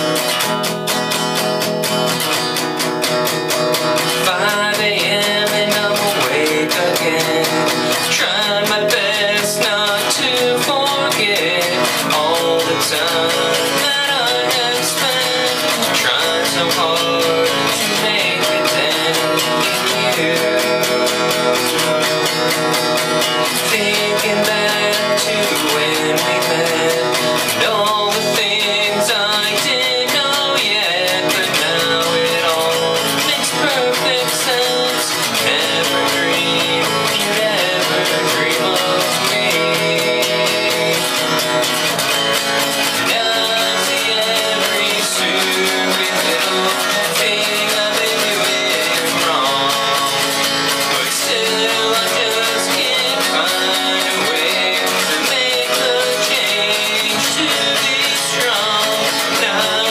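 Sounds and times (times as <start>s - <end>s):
acoustic guitar strumming: 0.0s - 59.9s.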